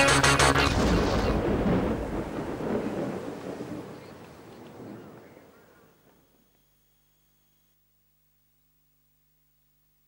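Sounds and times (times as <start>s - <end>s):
music: 0.0s - 1.0s
rain-like hiss: 0.2s - 7.9s
thunder-like rumbling: 0.6s - 6.4s.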